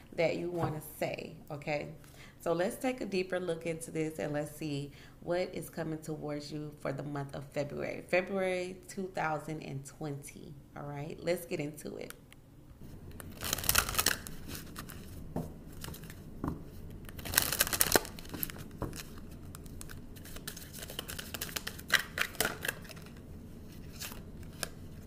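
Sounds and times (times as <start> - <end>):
cards being shuffled: 13.2 - 16.2, 16.8 - 25.0.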